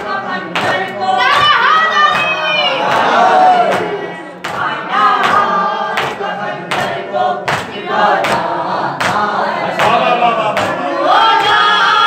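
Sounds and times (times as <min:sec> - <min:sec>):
group chanting together: 0:00.0 - 0:12.0
rhythmic chest-beating: 0:00.0 - 0:12.0.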